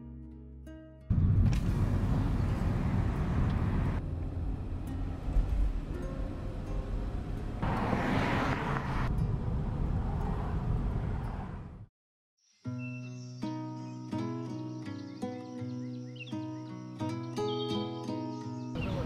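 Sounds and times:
car interior road rumble: 1.1 - 11.8.

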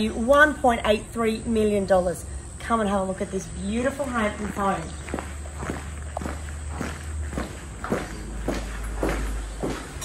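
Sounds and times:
footsteps on concrete and tile: 3.6 - 10.0.

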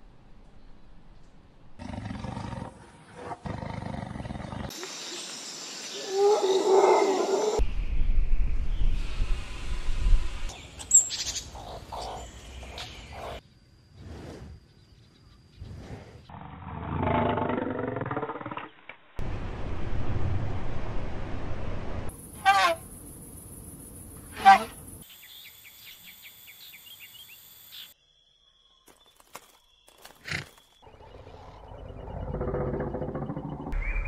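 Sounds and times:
sweeping animal calls: 22.2 - 23.3
low pitched animal call: 30.9 - 34.0.

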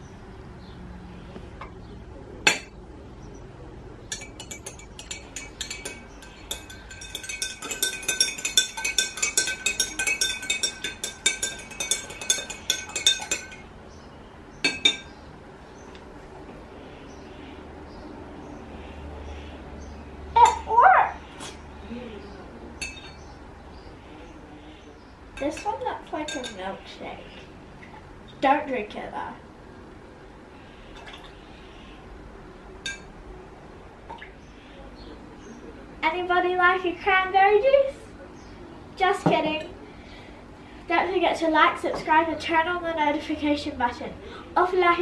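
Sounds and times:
spoon clinking in glass: 4.1 - 13.7, 14.6 - 15.1, 22.8 - 23.2.

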